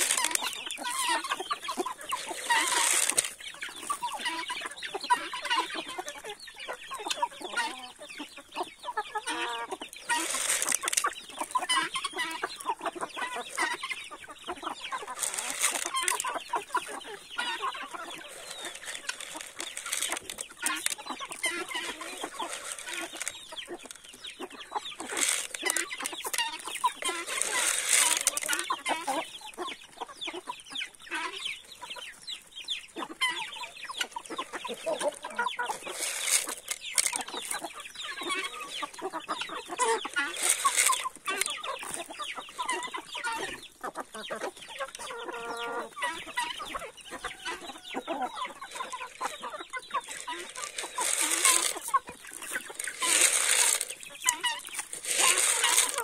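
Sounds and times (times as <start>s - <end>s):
chickens calling loudly: 0.0s - 56.0s
chickens clucking: 0.0s - 56.0s
chickens pecking at corn: 0.0s - 56.0s.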